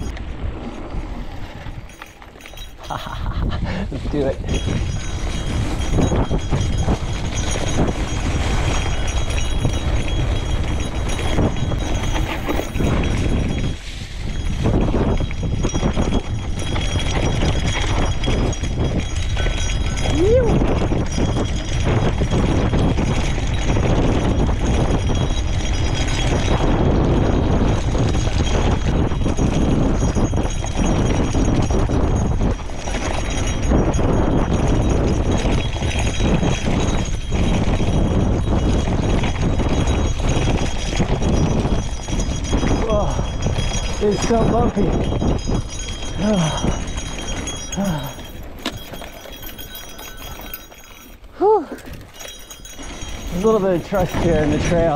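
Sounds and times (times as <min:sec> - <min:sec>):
bike rattling over bumpy track: 0:00.0 - 0:54.9
wind rush on microphone: 0:00.0 - 0:54.9.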